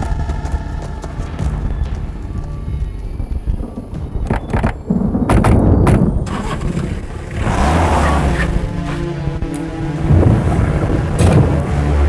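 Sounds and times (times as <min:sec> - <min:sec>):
deep rumble: 0:00.0 - 0:12.0
low boom: 0:00.0 - 0:12.0
tense film score: 0:00.0 - 0:12.0.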